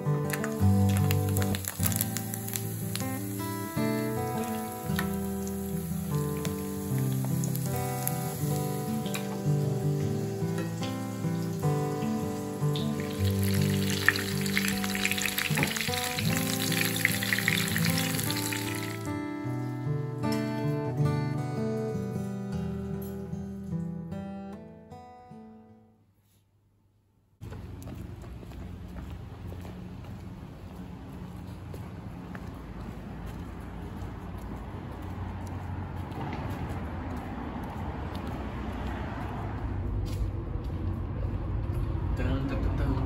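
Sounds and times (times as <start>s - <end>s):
acoustic guitar music: 0.0s - 26.0s
oil sizzling in a frying pan: 0.3s - 19.2s.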